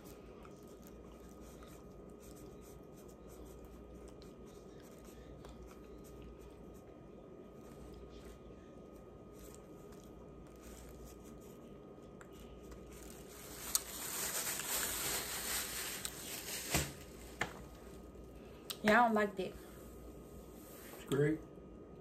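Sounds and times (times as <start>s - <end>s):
plastic bag crinkling: 12.4s - 17.7s.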